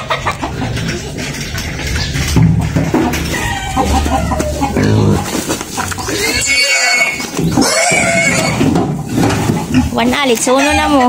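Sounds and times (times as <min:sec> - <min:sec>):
pig squealing: 0:03.3 - 0:08.8, 0:10.5 - 0:11.0.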